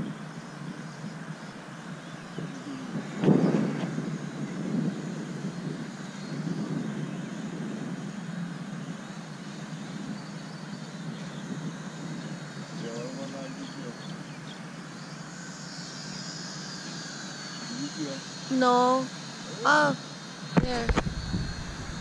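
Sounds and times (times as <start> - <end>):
low outdoor rumble: 0.0 - 22.0.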